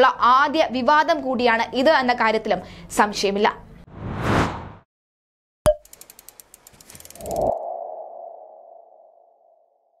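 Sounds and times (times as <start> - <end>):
whoosh: 3.9 - 4.8
rapid ticks: 5.8 - 7.6.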